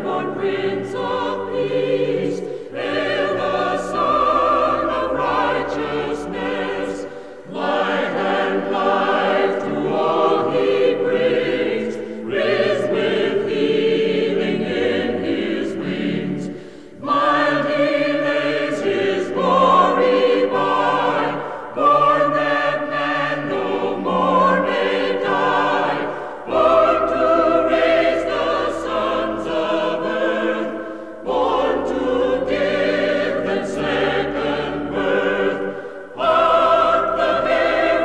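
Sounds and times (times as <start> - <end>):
choir singing held chords: 0.0 - 38.0.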